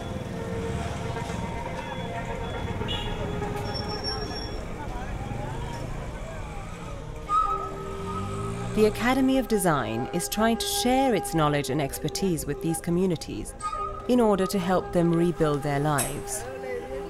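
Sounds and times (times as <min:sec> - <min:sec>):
motor traffic: 0:00.0 - 0:12.7
people talking: 0:08.8 - 0:13.5, 0:14.1 - 0:16.4.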